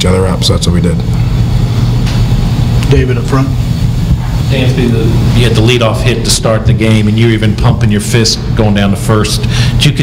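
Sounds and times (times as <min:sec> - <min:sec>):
loud low hum: 0:00.0 - 0:10.0.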